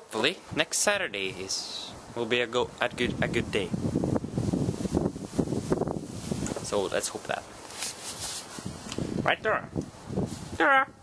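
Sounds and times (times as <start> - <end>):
wind buffeting microphone: 0.5 - 7.5, 8.2 - 11.0.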